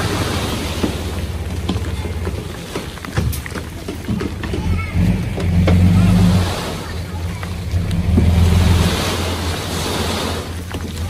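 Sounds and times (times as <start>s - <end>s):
dump truck engine running: 0.0s - 11.0s.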